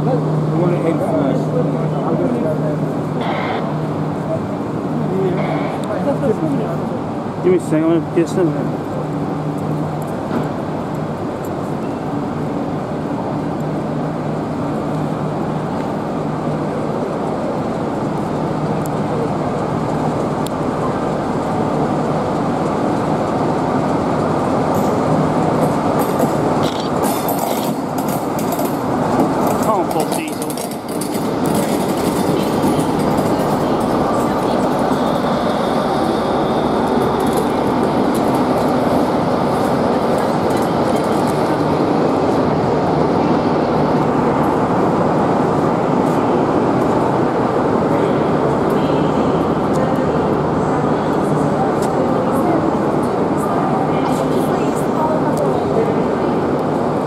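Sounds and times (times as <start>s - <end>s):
diesel locomotive passing: 0.0s - 57.0s
train coaches rolling on rails: 0.0s - 57.0s.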